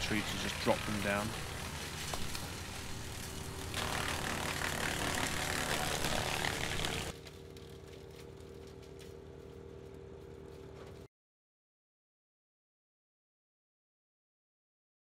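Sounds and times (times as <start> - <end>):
engine humming: 0.0 - 11.1.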